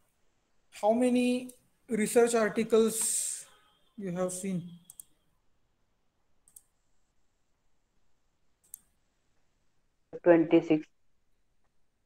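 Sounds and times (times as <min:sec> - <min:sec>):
short clicks: 0:04.8 - 0:05.2.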